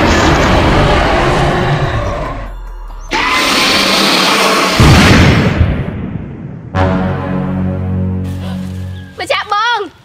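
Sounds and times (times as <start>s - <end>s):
heavy low boom: 4.8s - 8.2s
music: 6.7s - 9.8s.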